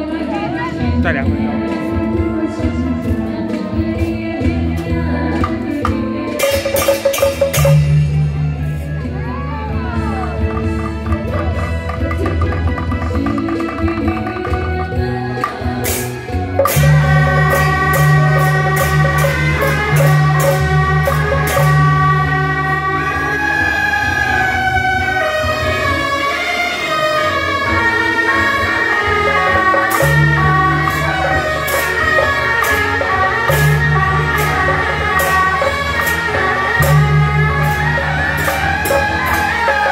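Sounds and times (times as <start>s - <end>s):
drums: 0.0s - 39.9s
suona shawms playing melody: 5.2s - 39.9s
cymbal crashes: 6.4s - 9.0s, 15.8s - 23.4s, 27.0s - 39.9s
gong strikes: 16.6s - 22.6s, 27.8s - 39.9s.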